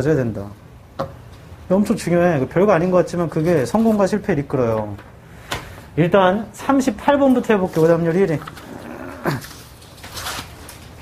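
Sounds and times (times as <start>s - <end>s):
paper pages rustling: 7.3s - 11.0s.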